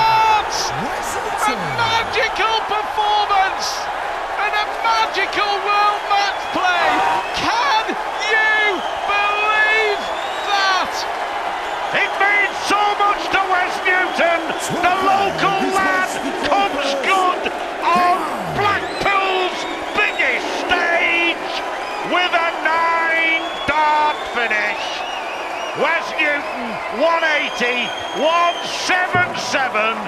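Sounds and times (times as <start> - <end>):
crowd cheering and whooping: 0.0 - 30.0.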